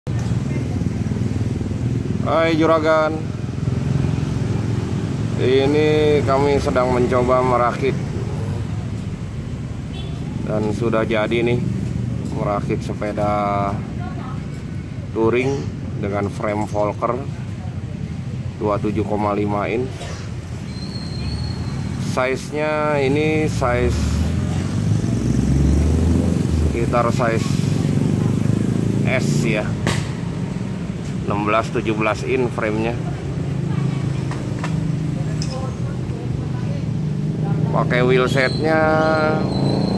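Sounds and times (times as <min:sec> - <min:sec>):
vehicle engine rumble: 0:00.1 - 0:39.9.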